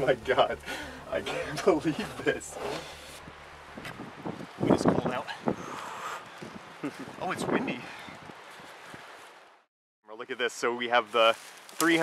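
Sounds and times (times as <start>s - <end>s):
faint wind hiss: 0.0s - 9.6s.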